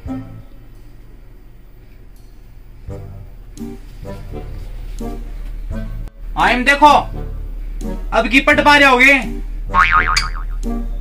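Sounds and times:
background music: 0.0 - 11.0
cartoon boing sound effect: 9.7 - 10.7.

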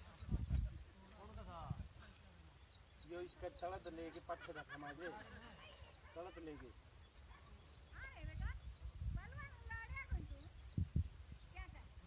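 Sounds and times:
wind on microphone: 0.0 - 2.1, 7.5 - 12.0
people talking and calling out: 0.0 - 12.0.

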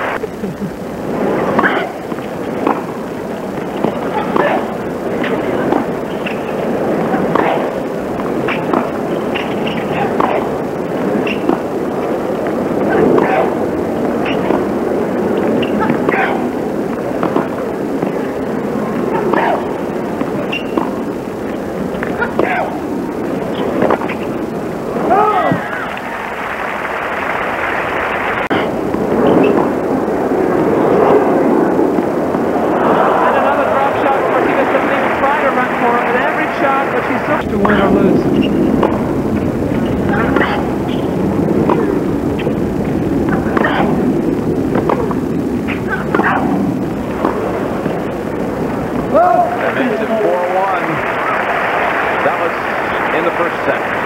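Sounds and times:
stadium crowd noise: 0.0 - 54.0
racket hitting ball: 1.4 - 13.5, 14.1 - 14.7, 15.4 - 18.2, 19.0 - 24.4, 37.6 - 44.1, 44.7 - 48.0.

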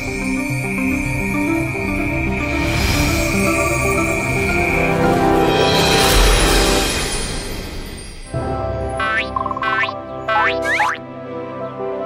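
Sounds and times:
cartoon background music: 8.3 - 12.0
springy boing sound effects: 9.0 - 11.0.

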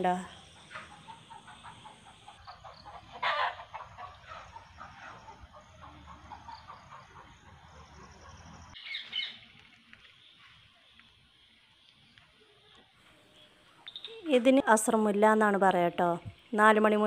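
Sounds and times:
chirping animal calls: 0.2 - 9.5.

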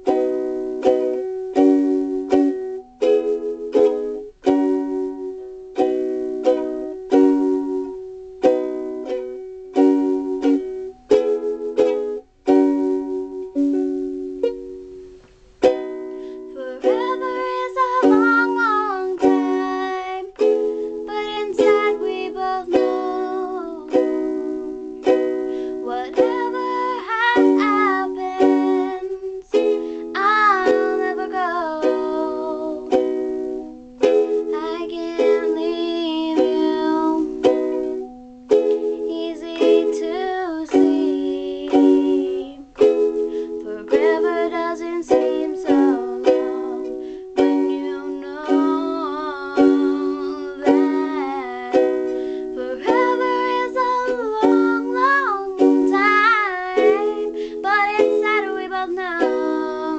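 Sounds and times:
girl singing: 0.0 - 59.9
ukulele strumming: 0.0 - 59.9.

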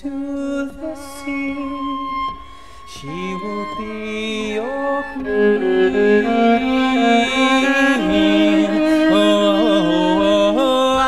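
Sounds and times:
bowed viola: 0.5 - 11.0.

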